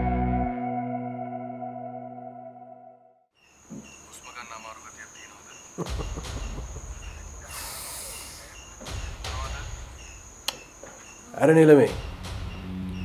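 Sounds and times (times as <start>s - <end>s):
crickets chirping: 3.4s - 13.0s.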